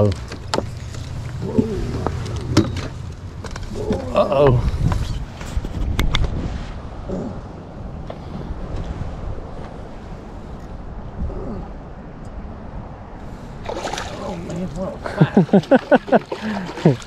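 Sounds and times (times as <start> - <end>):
wind rumble on microphone: 0.0 - 15.1
water lapping against boat hull: 13.6 - 17.0.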